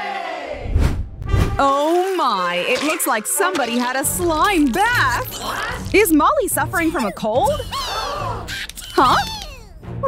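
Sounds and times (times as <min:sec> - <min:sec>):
quick whoosh: 0:00.6 - 0:01.6.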